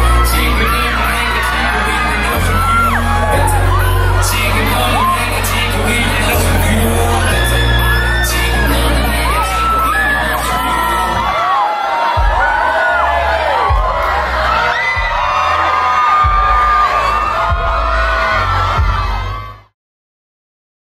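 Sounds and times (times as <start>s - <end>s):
hip-hop beat with deep bass: 0.0s - 11.3s, 12.1s - 19.7s
crowd screaming and cheering: 0.0s - 19.8s.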